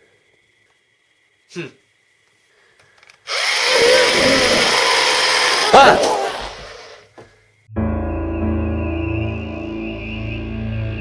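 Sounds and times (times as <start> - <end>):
pencil sharpener grinding: 3.3 - 7.0.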